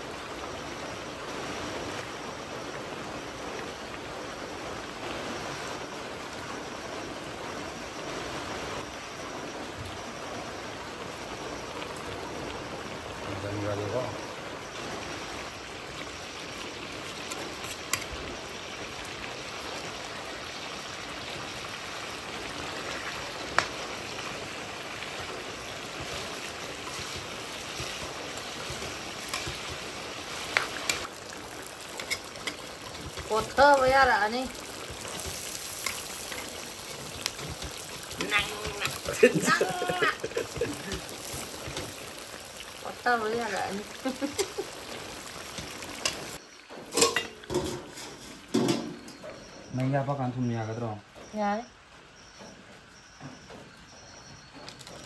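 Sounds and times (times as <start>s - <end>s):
meat sizzling in a wok: 0.0s - 51.7s.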